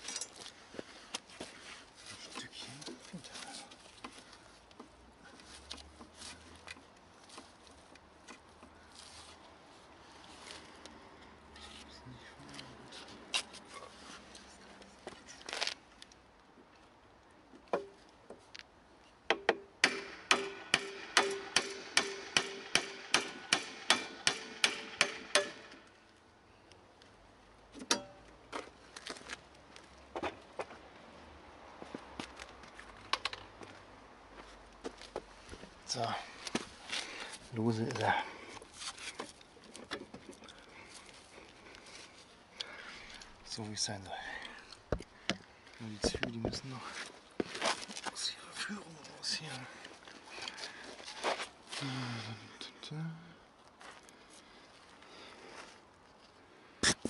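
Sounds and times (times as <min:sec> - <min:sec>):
hand tools clinking on metal: 0:00.0 - 0:00.5.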